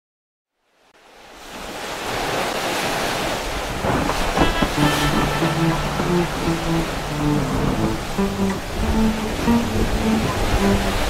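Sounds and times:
ocean waves washing: 1.1 - 11.0.

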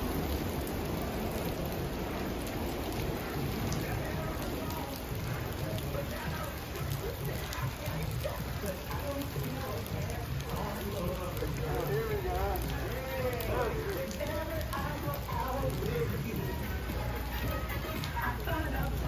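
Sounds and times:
heavy rain splashing on pavement: 0.0 - 19.0.

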